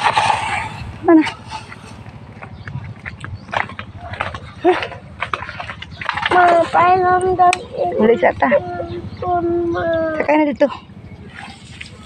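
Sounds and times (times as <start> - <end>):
footsteps on gravel: 1.7 - 6.6.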